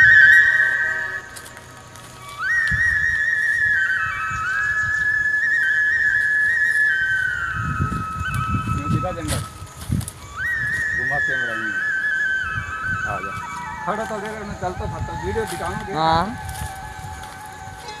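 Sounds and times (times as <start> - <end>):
flute-like melody: 0.0 - 18.0.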